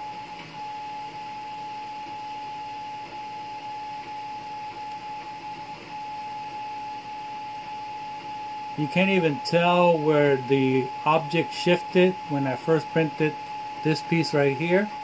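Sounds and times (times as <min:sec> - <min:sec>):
steady whine: 0:00.0 - 0:15.0.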